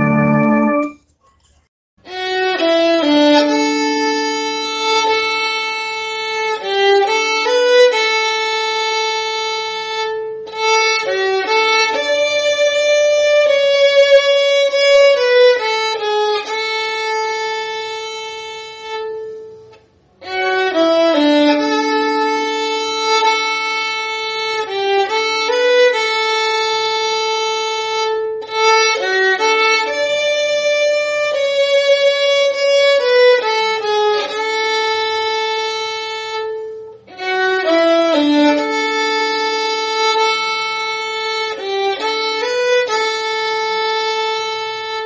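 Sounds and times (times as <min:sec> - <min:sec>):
alto saxophone: 0:00.0 - 0:01.0
violin: 0:00.0 - 0:01.1, 0:02.0 - 0:45.0
organ: 0:00.0 - 0:01.2.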